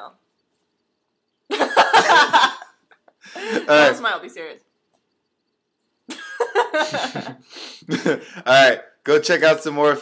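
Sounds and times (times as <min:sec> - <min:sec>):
breathy laughter: 0:06.1 - 0:08.4.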